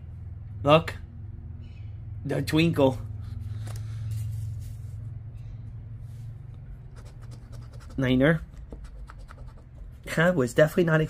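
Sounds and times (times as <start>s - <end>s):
steady low hum: 0.0s - 11.0s
coin scraping scratch card: 6.9s - 10.0s.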